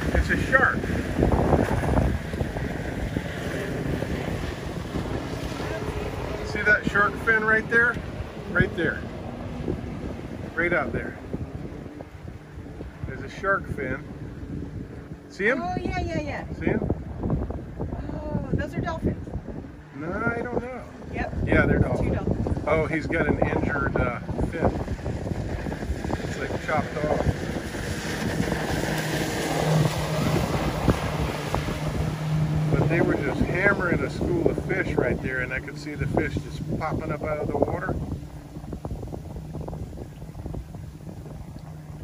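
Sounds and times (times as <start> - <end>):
outboard motor running: 0.0 - 42.0
wind buffeting microphone: 0.0 - 42.0.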